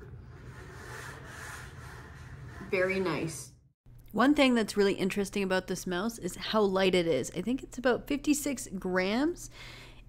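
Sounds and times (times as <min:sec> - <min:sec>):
mouse rubbing on desk: 0:00.0 - 0:03.3.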